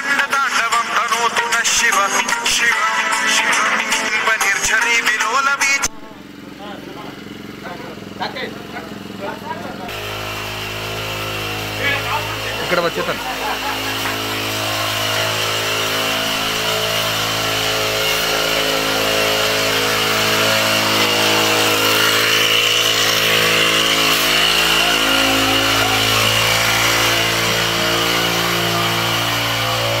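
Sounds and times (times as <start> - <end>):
engine-driven sprayer running: 0.0 - 30.0.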